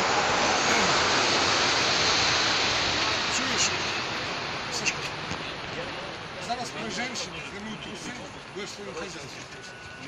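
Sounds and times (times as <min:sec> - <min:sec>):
steady rushing noise: 0:00.0 - 0:10.0
people talking: 0:00.6 - 0:01.1, 0:03.2 - 0:04.0, 0:04.7 - 0:10.0.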